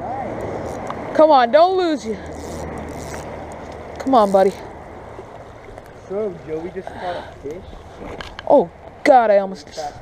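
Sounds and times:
road traffic noise: 0:00.0 - 0:09.1.

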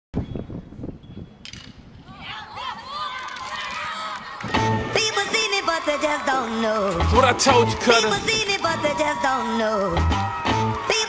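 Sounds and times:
wind rumble on microphone: 0:00.2 - 0:03.0.

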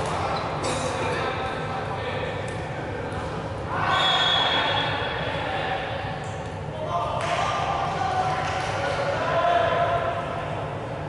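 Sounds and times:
players calling out in echoing hall: 0:00.0 - 0:11.0.

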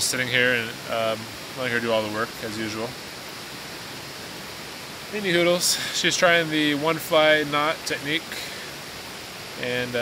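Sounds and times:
river water flowing: 0:00.0 - 0:10.0.

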